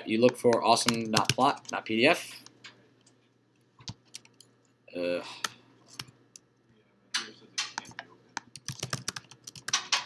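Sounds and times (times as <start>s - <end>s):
typing on computer keyboard: 0.2s - 1.8s, 3.8s - 4.4s, 7.8s - 10.0s.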